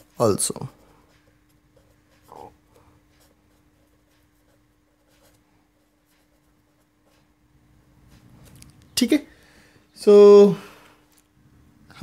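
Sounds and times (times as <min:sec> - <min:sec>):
marker pen scratching on paper: 0:00.0 - 0:08.6
low electrical hum: 0:00.0 - 0:12.0.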